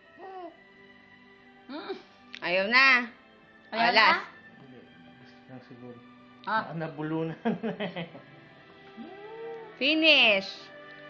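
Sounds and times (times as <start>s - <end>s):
baby cooing: 0.2s - 0.6s, 9.0s - 9.8s.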